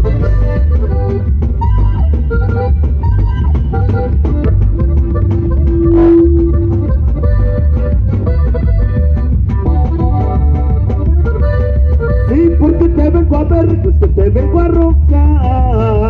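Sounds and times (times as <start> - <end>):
button accordion melody: 0.0 - 14.6
drum kit: 0.0 - 16.0
heavy bass: 0.0 - 16.0.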